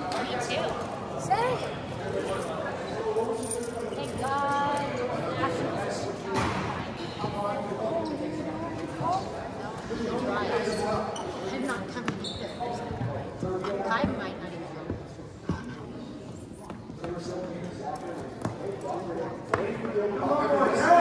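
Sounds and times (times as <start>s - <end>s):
voices and calls echoing: 0.0s - 21.0s.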